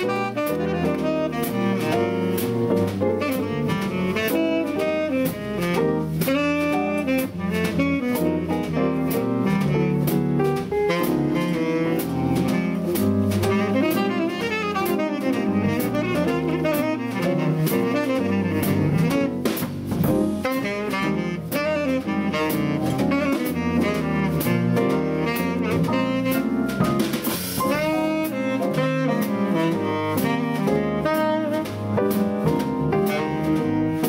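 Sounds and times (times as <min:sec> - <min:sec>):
double bass: 0:00.0 - 0:34.0
piano: 0:00.0 - 0:34.0
tenor saxophone jazz solo: 0:00.0 - 0:34.0.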